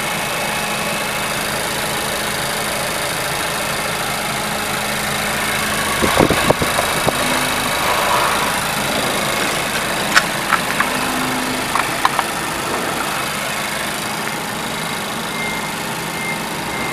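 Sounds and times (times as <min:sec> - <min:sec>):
car engine idling: 0:00.0 - 0:16.9.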